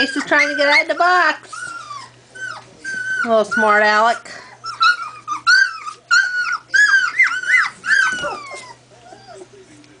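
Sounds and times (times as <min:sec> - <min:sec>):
puppy whining: 0:00.0 - 0:10.0.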